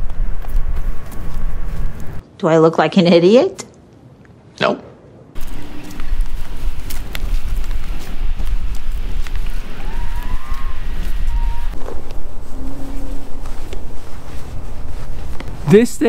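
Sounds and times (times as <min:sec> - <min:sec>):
wind buffeting microphone: 0:00.0 - 0:02.2, 0:05.3 - 0:15.6.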